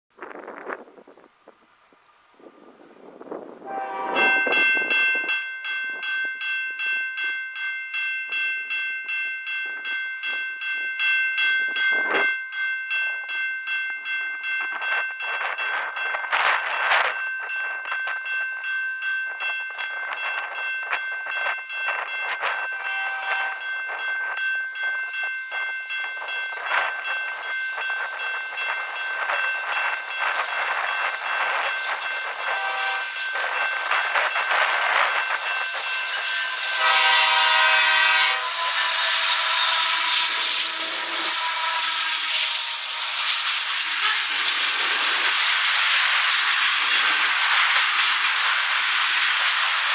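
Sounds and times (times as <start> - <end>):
freight train approaching: 0.1 - 49.9.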